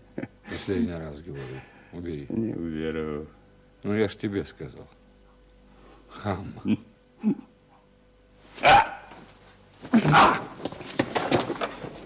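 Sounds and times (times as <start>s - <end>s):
man imitating dog barking: 8.6s - 9.1s, 10.0s - 10.5s.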